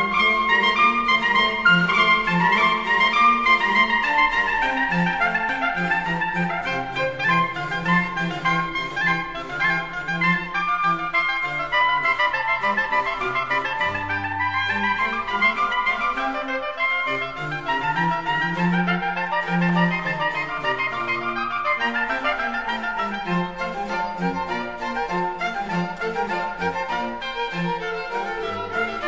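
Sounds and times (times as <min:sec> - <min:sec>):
instrumental sacred music: 0:00.0 - 0:29.0.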